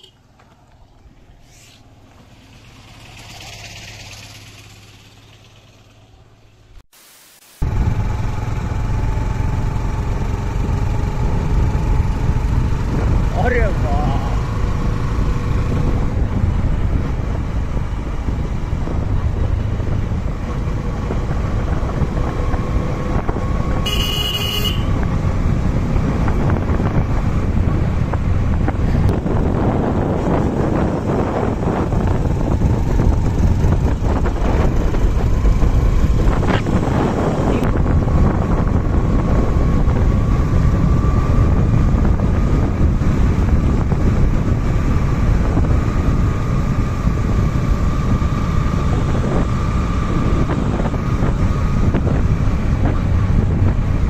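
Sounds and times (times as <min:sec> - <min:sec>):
motorcycle engine: 0:00.0 - 0:06.8, 0:07.6 - 0:54.0
wind rushing on microphone: 0:10.2 - 0:54.0.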